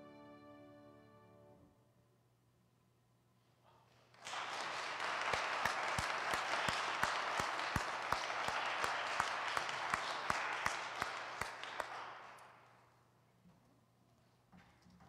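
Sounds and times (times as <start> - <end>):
congregation applauding: 4.0 - 12.9
loud steady hand clapping: 4.0 - 12.9.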